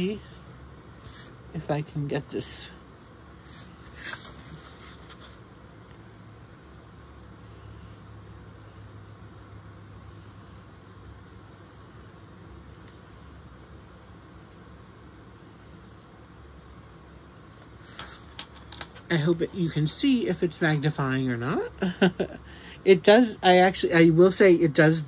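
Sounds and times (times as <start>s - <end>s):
faint low room hum: 0.0s - 25.0s.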